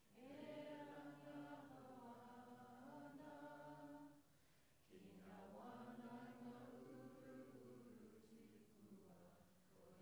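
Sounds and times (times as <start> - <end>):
group singing together: 0.2 - 4.1, 4.9 - 8.6.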